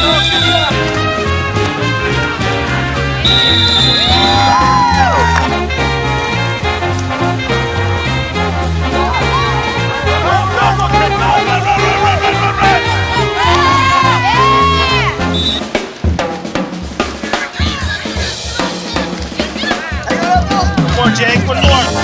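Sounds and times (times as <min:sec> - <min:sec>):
bass line: 0:00.0 - 0:15.8, 0:17.6 - 0:22.0
drum kit with snare hits: 0:00.0 - 0:22.0.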